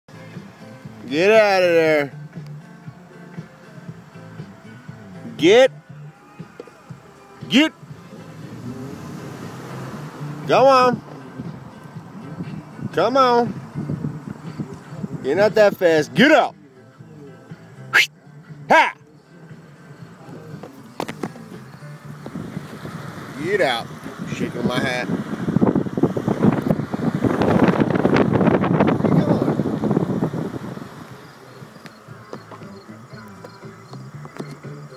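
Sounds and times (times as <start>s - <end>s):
road and wind noise: 0.1s - 34.9s
vehicle engine accelerating: 6.8s - 15.2s, 19.5s - 34.9s
rustling and knocking handling noise: 20.6s - 21.5s.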